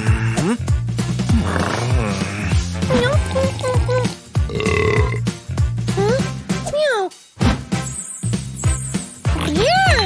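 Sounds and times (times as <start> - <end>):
children's music with bass line: 0.3 - 10.0.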